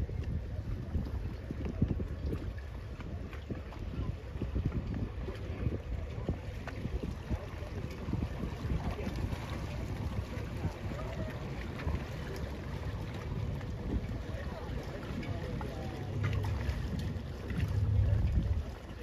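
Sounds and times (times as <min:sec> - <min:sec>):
faint distant voices: 0:00.0 - 0:19.0
wind buffeting microphone: 0:00.0 - 0:19.0.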